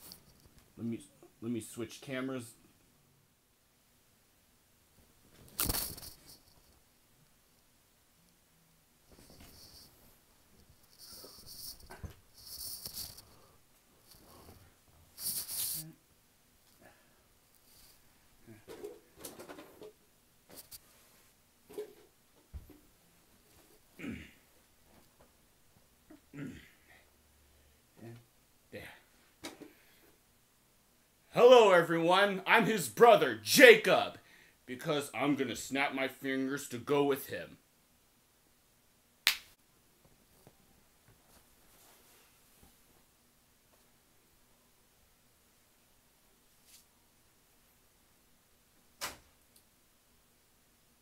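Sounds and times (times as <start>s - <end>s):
finger snap: 39.2s - 39.5s.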